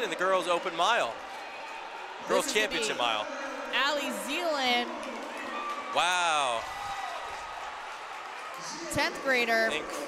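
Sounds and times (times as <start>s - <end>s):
crowd applauding and cheering: 0.0s - 10.0s.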